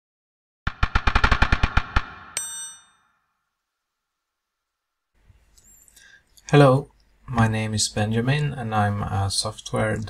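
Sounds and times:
bright ringing ding: 2.4 - 3.2.

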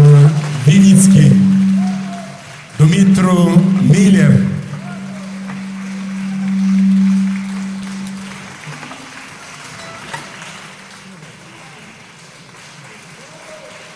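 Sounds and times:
long held low note: 0.0 - 11.5
applause: 0.0 - 13.9.

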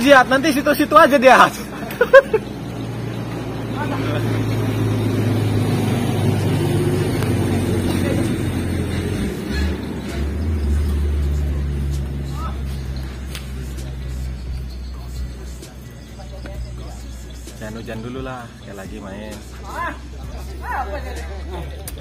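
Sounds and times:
motor engine humming: 1.6 - 18.9.

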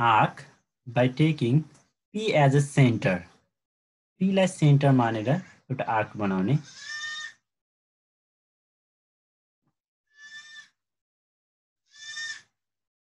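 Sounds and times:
animal bleating: 6.6 - 7.4, 10.1 - 10.8, 11.9 - 12.6.

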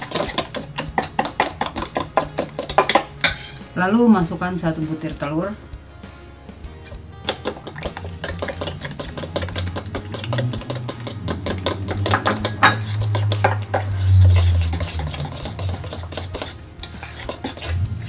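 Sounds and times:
spoon clinking and scraping bowl: 0.0 - 3.8, 6.8 - 18.0.

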